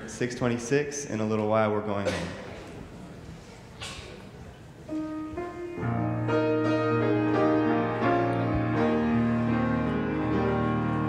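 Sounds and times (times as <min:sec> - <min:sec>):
instrumental hymn chords: 0:04.9 - 0:11.0.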